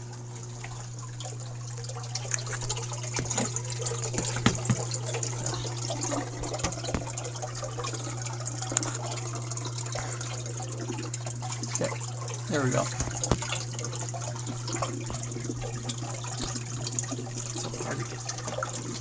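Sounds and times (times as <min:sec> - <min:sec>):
steady low hum: 0:00.0 - 0:19.0
water gurgling and splashing: 0:00.0 - 0:19.0.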